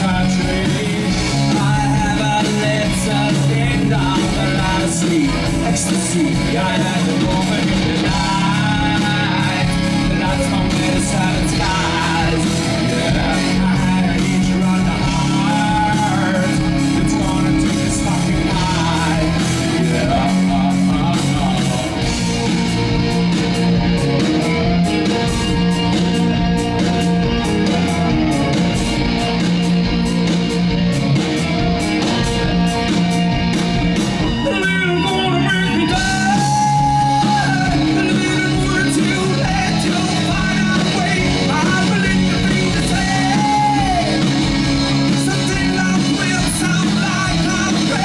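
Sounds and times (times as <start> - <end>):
male lead vocal: 0.0 - 22.7, 34.3 - 48.0
electric guitar: 0.0 - 48.0
live rock band: 0.0 - 48.0.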